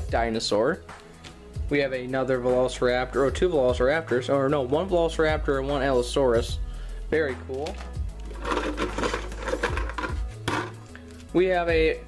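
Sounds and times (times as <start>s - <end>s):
plastic toy figures clattering: 7.8s - 10.8s.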